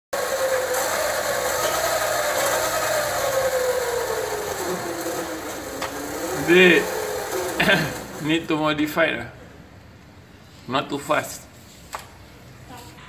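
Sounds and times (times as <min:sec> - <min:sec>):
electric motor and chain whining: 0:00.2 - 0:08.8.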